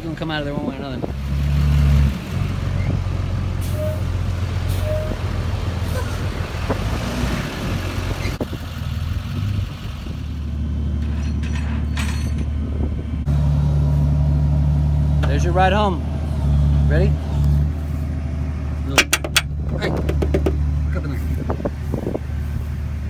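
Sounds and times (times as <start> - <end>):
truck engine droning: 0.0 - 23.0.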